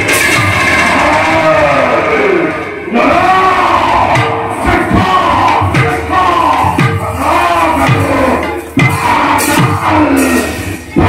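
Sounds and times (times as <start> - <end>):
instrumental accompaniment: 0.0 - 3.4, 4.1 - 11.0.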